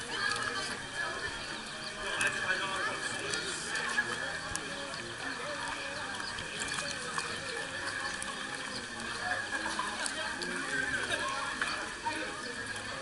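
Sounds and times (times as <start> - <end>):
crowd chatter: 0.0 - 13.0.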